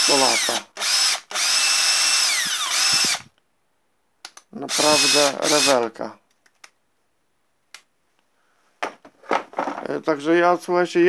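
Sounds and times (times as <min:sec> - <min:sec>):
cordless drill whining: 0:00.0 - 0:03.4, 0:04.7 - 0:05.8.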